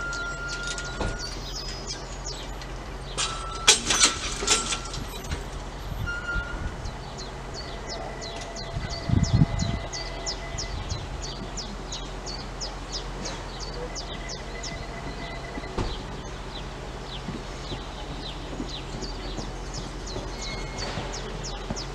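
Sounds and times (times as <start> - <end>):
bird chirping: 0.0 - 3.7, 6.1 - 21.9
low thuds: 0.2 - 21.9.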